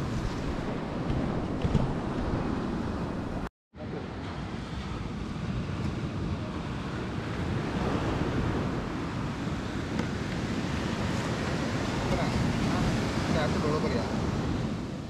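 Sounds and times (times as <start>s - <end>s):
sea surf breaking: 0.0s - 15.0s
wind on microphone: 0.0s - 15.0s.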